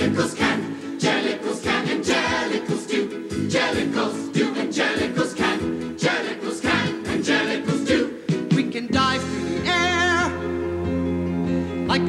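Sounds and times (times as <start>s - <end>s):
ensemble singing in chorus: 0.0s - 9.7s
lively instrumental accompaniment: 0.0s - 12.0s.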